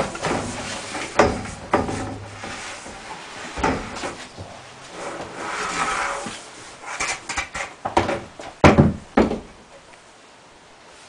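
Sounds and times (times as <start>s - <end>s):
plastic pipe scrapes and knocks: 0.0s - 4.5s
plastic pipe rubbing: 0.0s - 7.8s.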